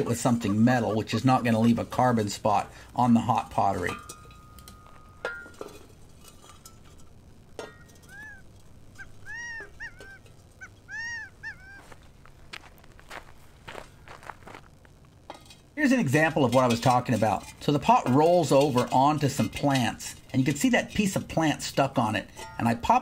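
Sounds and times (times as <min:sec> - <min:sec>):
shovel scraping ash and stones: 0:00.0 - 0:09.3, 0:15.2 - 0:23.0
high arching animal calls: 0:07.8 - 0:12.3.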